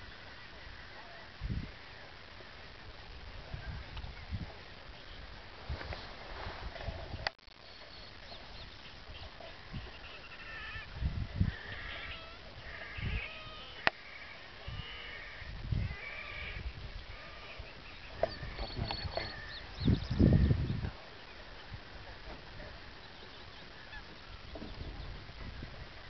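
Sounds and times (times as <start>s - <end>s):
geese calling: 7.7s - 21.8s, 22.8s - 24.8s.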